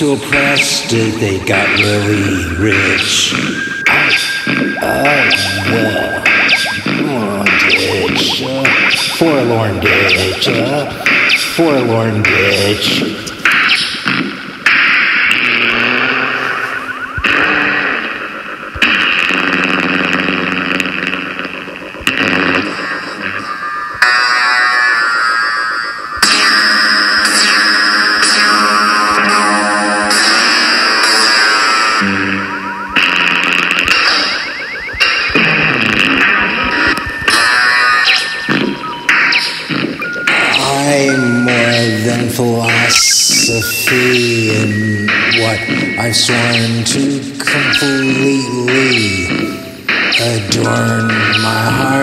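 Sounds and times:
hissy synthesized noise: 0:00.0 - 0:52.0.

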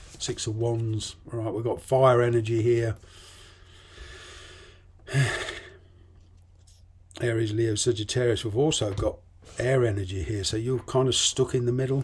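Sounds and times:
man breathing: 0:03.0 - 0:06.3.

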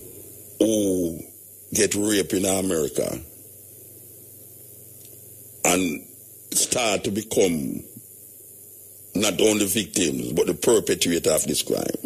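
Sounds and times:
faint low hum and hiss: 0:00.0 - 0:12.0.

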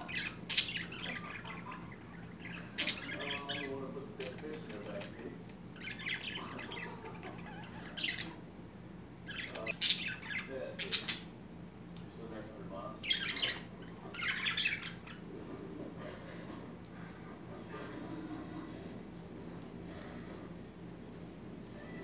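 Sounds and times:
budgerigars chirping: 0:00.0 - 0:08.4, 0:09.3 - 0:11.3, 0:12.8 - 0:15.3.

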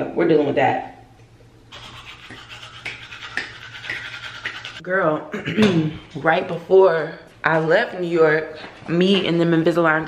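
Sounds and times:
toothbrush scrubbing teeth: 0:01.7 - 0:04.8.

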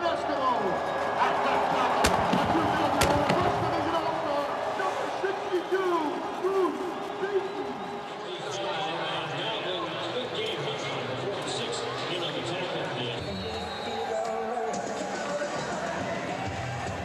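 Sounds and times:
stadium crowd cheering: 0:00.0 - 0:17.0.

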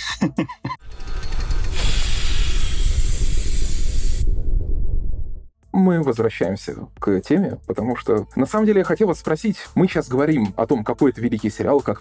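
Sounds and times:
low rumble: 0:00.9 - 0:05.5
loud steady hiss: 0:01.8 - 0:04.3.

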